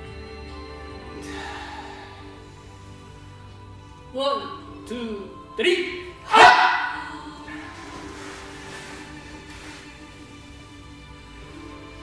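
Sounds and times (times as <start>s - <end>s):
quiet background music: 0.0s - 12.0s
loud shout ringing in room: 6.2s - 7.2s.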